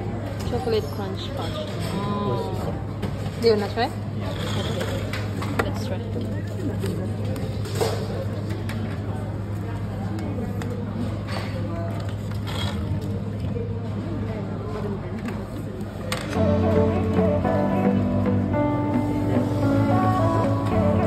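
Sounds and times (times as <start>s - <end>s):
music: 16.3s - 21.0s.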